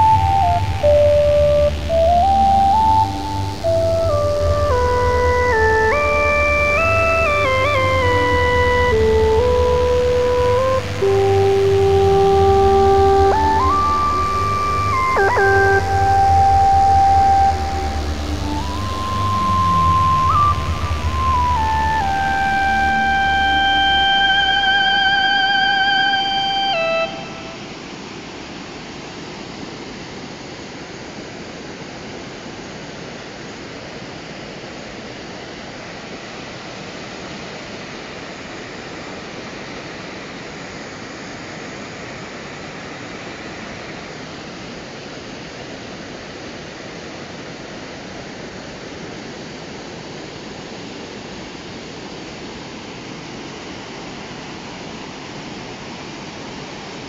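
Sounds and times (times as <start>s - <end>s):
electronic note with vibrato: 0.0s - 27.8s.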